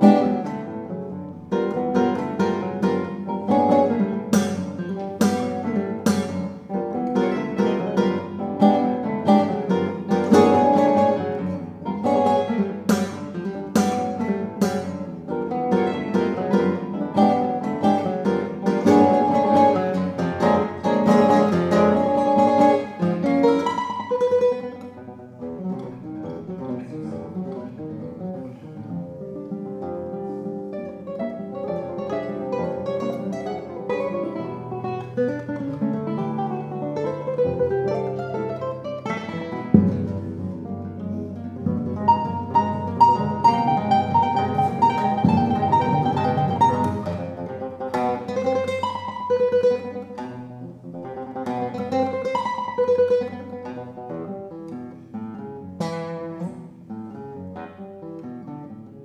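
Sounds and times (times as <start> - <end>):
classical guitars playing: 0.0 - 59.0.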